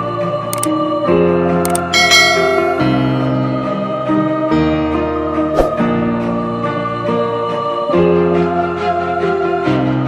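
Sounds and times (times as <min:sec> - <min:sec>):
background music held chords: 0:00.0 - 0:10.0.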